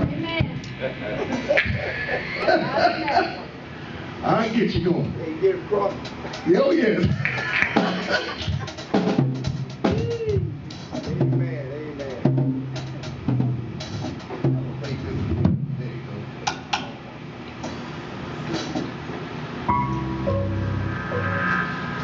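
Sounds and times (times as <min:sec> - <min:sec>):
irregular drum hits: 0:06.0 - 0:15.8
electric guitar notes sliding: 0:19.7 - 0:22.0.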